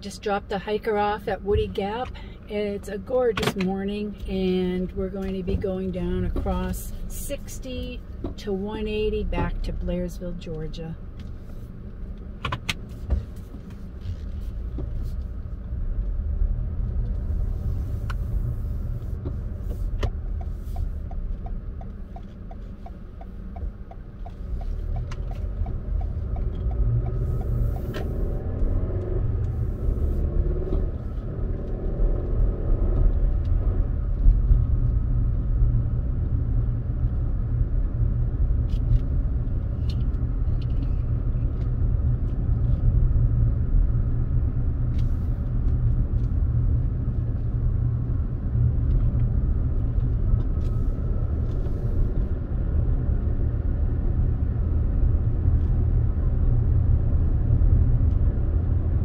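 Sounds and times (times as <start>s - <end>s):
engine and road noise rumble: 0.0s - 59.0s.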